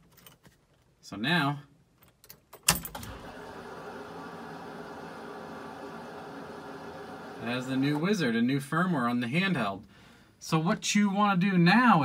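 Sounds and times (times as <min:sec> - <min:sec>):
truck electrics whirring: 0:03.0 - 0:08.4.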